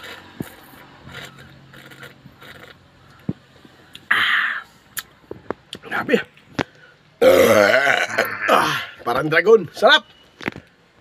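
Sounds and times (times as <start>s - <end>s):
man burping: 7.2s - 9.0s.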